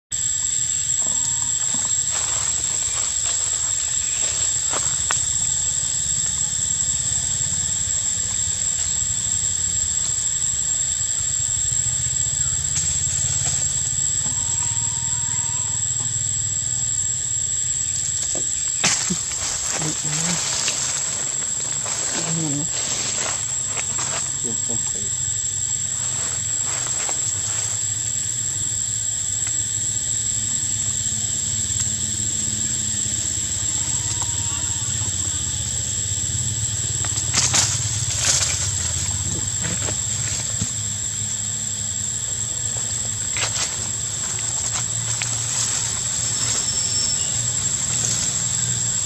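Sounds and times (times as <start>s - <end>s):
high-pitched insect drone: 0.1s - 49.0s
monkeys scraping and rustling: 0.9s - 6.1s, 17.5s - 28.2s, 35.1s - 41.0s, 41.8s - 49.0s.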